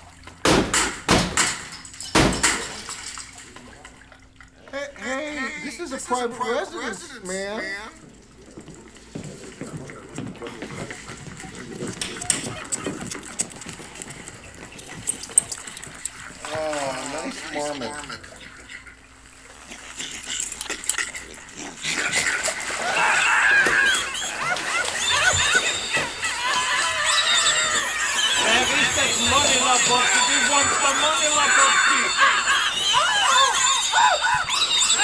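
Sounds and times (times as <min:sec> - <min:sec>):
bathwater splashing: 0:05.9 - 0:35.0
man screaming: 0:22.8 - 0:24.0, 0:26.4 - 0:34.6
small animal squeaking: 0:25.0 - 0:35.0.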